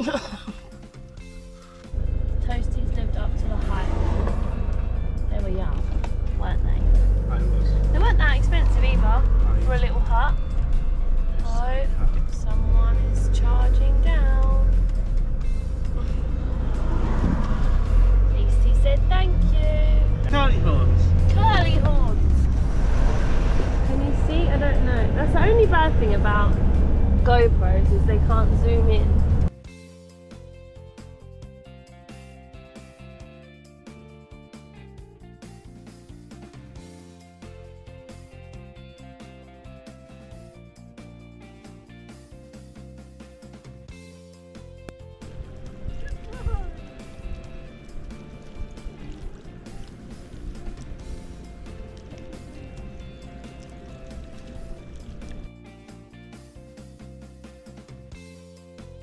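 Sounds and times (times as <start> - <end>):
engine and road rumble: 0.0 - 59.0
music: 0.0 - 59.0
voices: 2.4 - 4.3, 5.2 - 10.4, 18.2 - 22.5, 23.8 - 26.6, 27.2 - 29.2.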